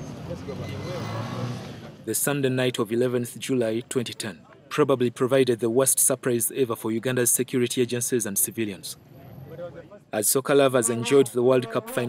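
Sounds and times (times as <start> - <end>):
road traffic noise: 0.0 - 12.0
people talking: 2.1 - 12.0.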